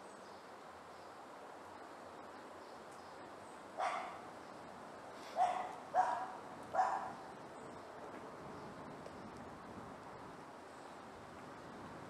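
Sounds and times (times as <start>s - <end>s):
faint outdoor background noise: 0.0s - 12.0s
dog barking: 3.8s - 4.3s, 5.3s - 7.2s.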